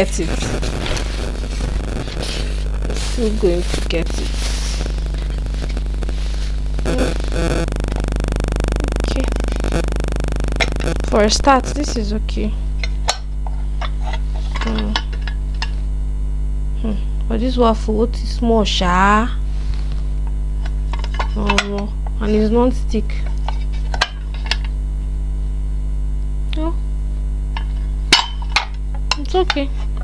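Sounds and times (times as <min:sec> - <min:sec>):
low electrical hum: 0:00.0 - 0:30.0.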